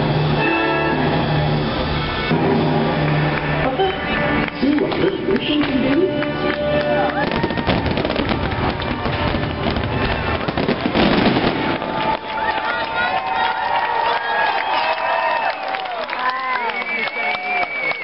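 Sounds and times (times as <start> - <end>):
fireworks booming and crackling: 0.0 - 13.4
crowd cheering: 0.0 - 18.0.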